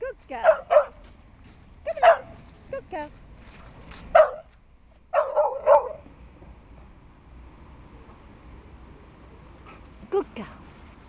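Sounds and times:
dog barking: 0:00.4 - 0:01.0, 0:02.0 - 0:02.4, 0:04.1 - 0:04.5, 0:05.2 - 0:06.0.

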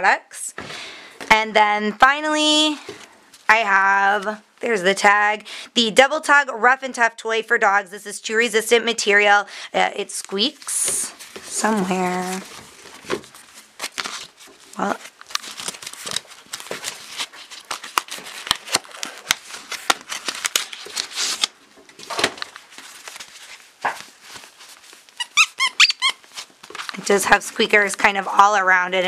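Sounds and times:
fabric rustling and crinkling: 0:10.3 - 0:27.8
dog toy squeaking: 0:25.2 - 0:26.2.

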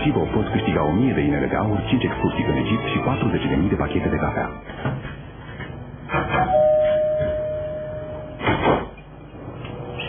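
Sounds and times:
two-note ding-dong chime: 0:06.5 - 0:08.4.

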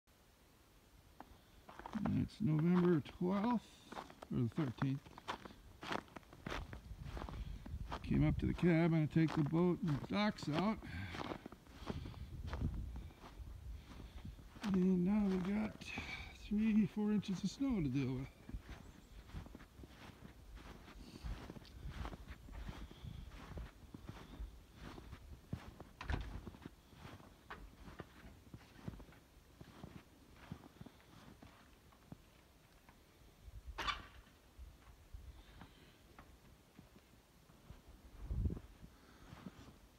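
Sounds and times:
footsteps in snow: 0:01.2 - 0:32.4, 0:36.7 - 0:39.8.

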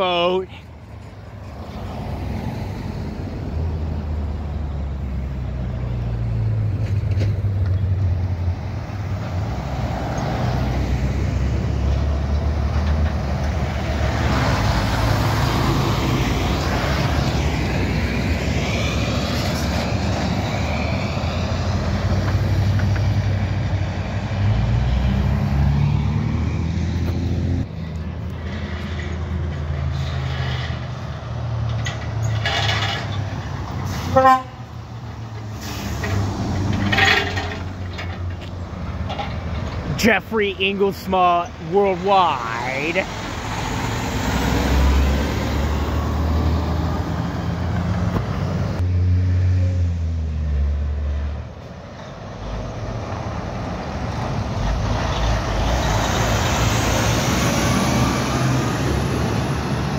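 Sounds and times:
tyres on road: 0:00.0 - 0:59.9
semi truck driving past: 0:00.5 - 0:40.0, 0:43.0 - 0:59.9.

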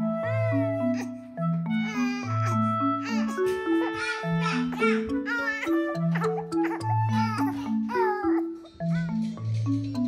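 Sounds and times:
background music with mallet notes: 0:00.0 - 0:10.0
baby crying: 0:00.2 - 0:09.3.

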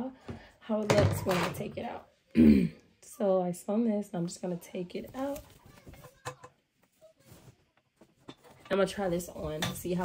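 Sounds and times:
knit fabric rustling: 0:04.7 - 0:10.0.

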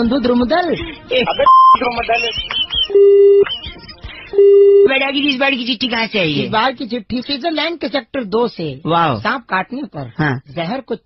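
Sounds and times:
low electronic beeps: 0:01.4 - 0:03.5.

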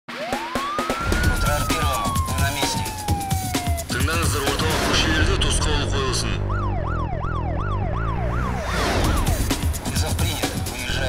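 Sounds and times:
siren wail: 0:00.1 - 0:09.4
intro theme music: 0:00.1 - 0:11.0
thumping bass beat: 0:00.3 - 0:11.0.

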